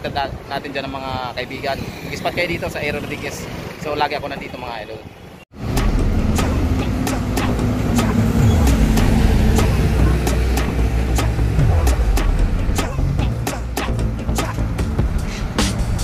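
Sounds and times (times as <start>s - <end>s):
traffic noise: 0.0s - 16.0s
bus diesel engine: 5.6s - 13.3s
background music beat: 5.6s - 16.0s.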